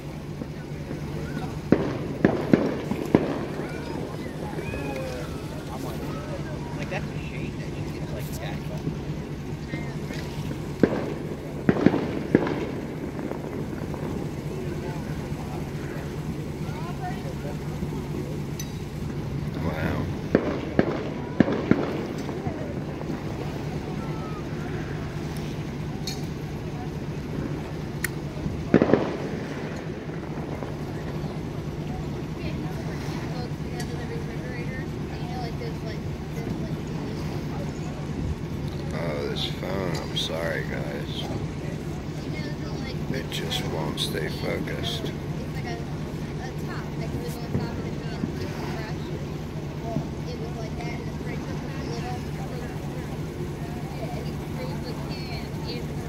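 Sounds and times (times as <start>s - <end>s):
fireworks bangs: 0.0s - 34.3s
faint voices: 0.0s - 56.0s
steady low hum: 0.0s - 56.0s.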